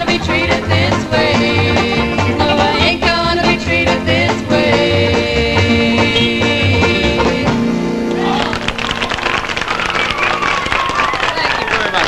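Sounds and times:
audience applauding: 0:08.2 - 0:12.0.

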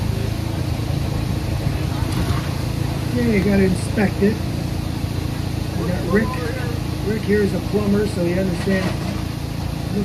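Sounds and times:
forklift engine humming: 0:00.0 - 0:10.0
faint voices: 0:05.6 - 0:09.0.

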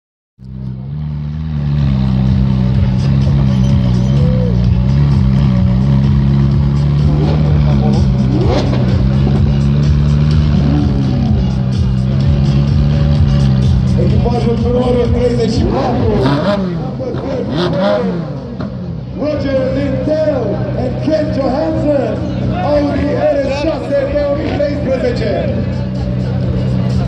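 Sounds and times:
sports car engines idling: 0:00.4 - 0:27.0
crowd chatter: 0:00.6 - 0:27.0.

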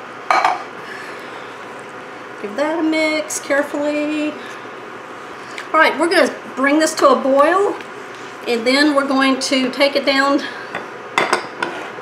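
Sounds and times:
kitchen noise: 0:00.3 - 0:00.7, 0:10.7 - 0:12.0.

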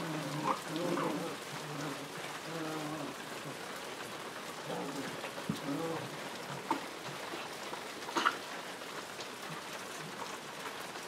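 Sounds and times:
puppies growling: 0:00.0 - 0:07.6.

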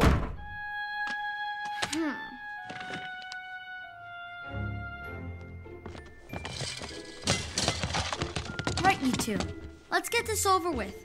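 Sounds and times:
door shutting with a thud: 0:00.0 - 0:00.4
soft background music: 0:00.4 - 0:11.0.

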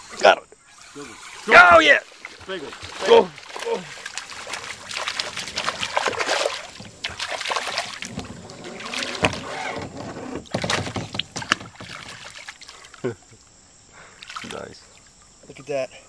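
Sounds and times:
fish splashing at surface: 0:01.0 - 0:09.4
sharp knocks on kayak: 0:05.2 - 0:12.4.

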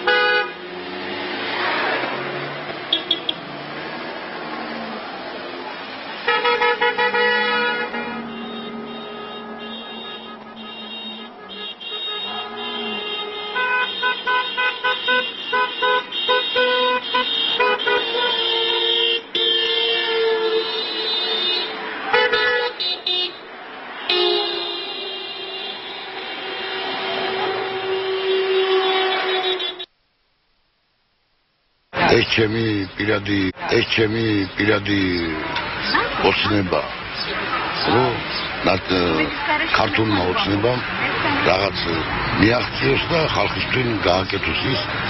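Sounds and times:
car horns honking: 0:00.0 - 0:00.7, 0:01.5 - 0:03.6, 0:06.1 - 0:29.9, 0:32.1 - 0:45.0
street noise: 0:00.0 - 0:45.0.

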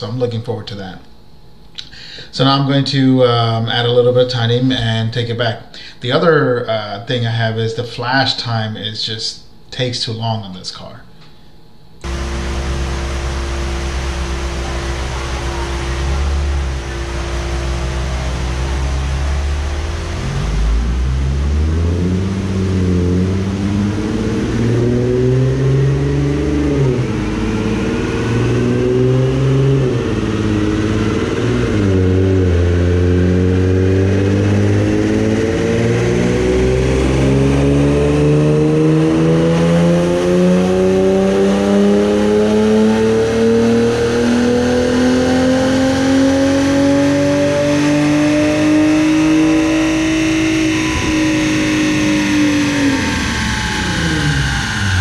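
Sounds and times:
car engine revving at full throttle: 0:12.0 - 0:55.0.

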